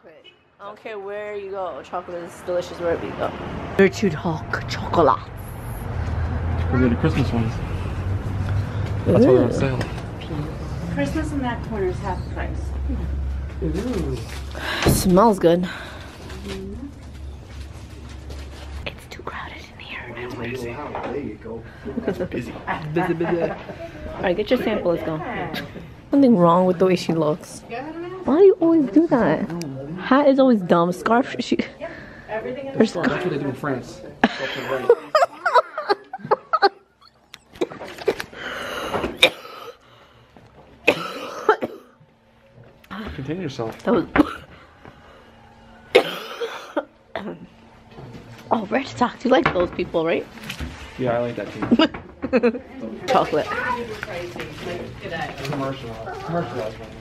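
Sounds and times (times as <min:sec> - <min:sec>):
person coughing: 0:39.1 - 0:39.8, 0:40.9 - 0:41.9, 0:44.1 - 0:44.5, 0:46.0 - 0:47.4.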